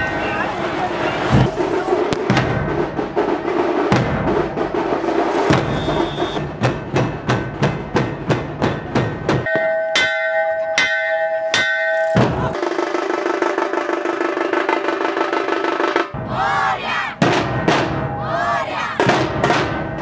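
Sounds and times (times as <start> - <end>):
barrel drums beaten fast: 1.3 - 10.1, 11.6 - 20.0
hammer striking ringing metal cylinder: 9.4 - 12.4.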